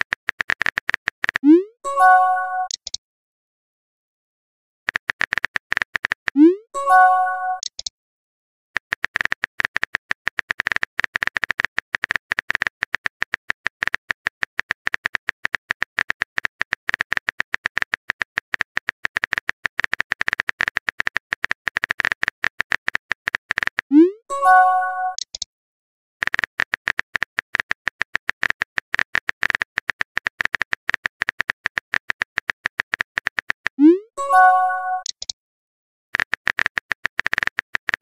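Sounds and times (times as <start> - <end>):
brief chiming tone: 6.5 - 7.6, 24.3 - 25.2, 33.8 - 35.2.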